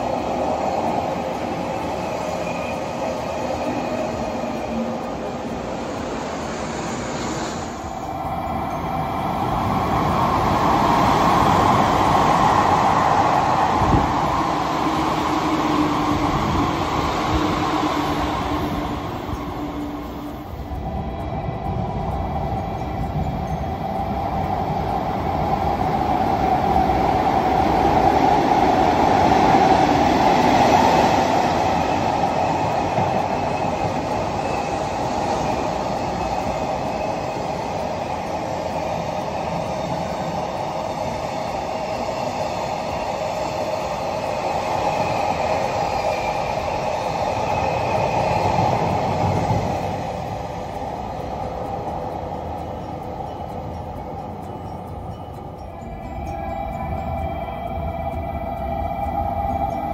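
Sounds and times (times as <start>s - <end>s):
train wheels rumbling on rails: 0.0s - 59.9s.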